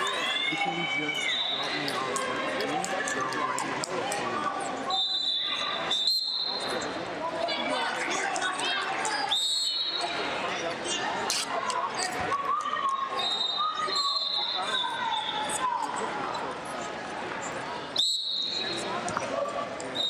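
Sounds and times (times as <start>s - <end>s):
echoing voices and chatter: 0.0s - 20.0s
referee whistle blasts: 4.9s - 6.8s, 13.0s - 15.6s, 18.0s - 18.9s.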